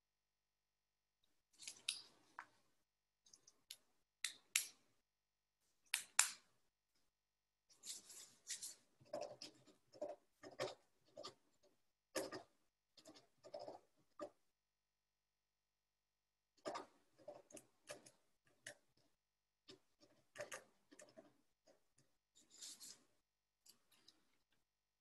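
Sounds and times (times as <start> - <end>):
garbled video call audio: 7.7 - 14.5.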